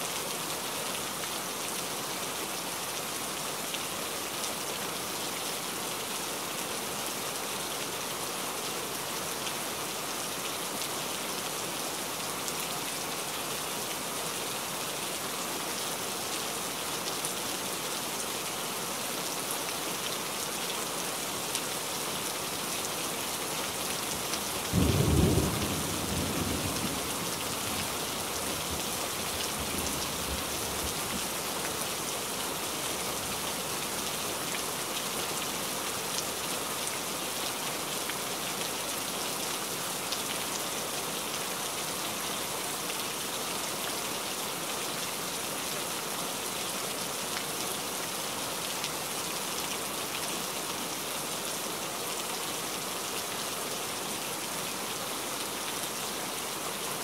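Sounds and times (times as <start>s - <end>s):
steady rain falling: 0.0s - 57.0s.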